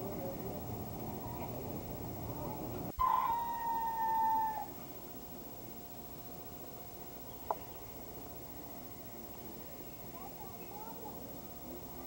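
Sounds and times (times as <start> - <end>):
animal long call: 2.3 - 4.9.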